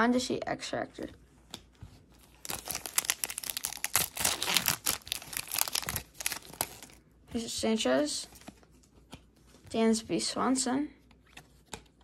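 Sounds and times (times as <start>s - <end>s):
foil wrapper crinkling: 2.2s - 7.0s.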